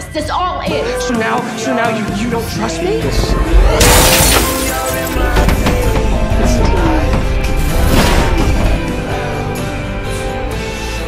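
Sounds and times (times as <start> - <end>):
music: 0.0 - 11.0
loud shattering crash: 3.8 - 6.0.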